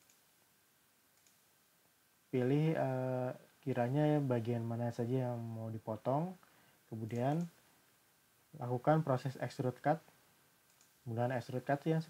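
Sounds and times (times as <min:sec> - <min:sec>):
faint computer mouse clicks: 0:00.0 - 0:00.3, 0:01.1 - 0:01.4, 0:07.1 - 0:07.6, 0:10.6 - 0:11.0.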